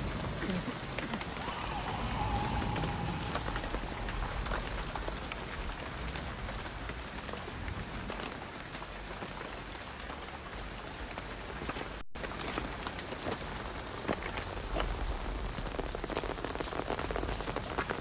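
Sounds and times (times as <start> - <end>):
heavy rain: 0.0 - 18.0
raindrop hits: 0.0 - 18.0.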